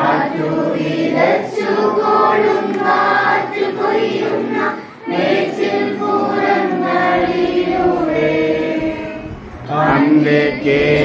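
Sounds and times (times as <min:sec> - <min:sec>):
group singing a hymn: 0:00.0 - 0:11.0.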